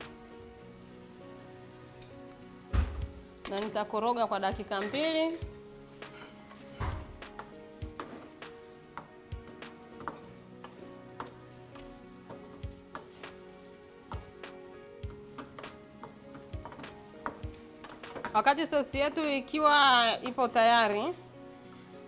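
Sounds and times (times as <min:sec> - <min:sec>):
spatula scraping and knocking pan: 0:05.5 - 0:19.2.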